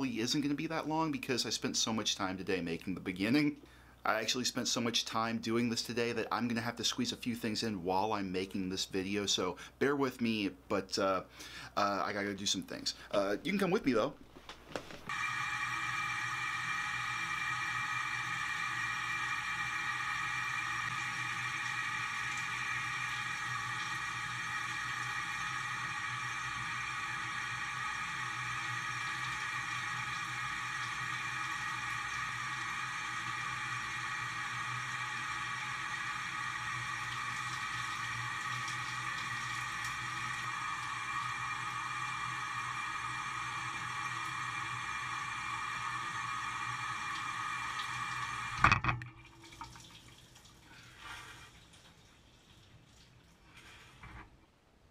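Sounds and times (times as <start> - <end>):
shower spray running: 15.0 - 48.6.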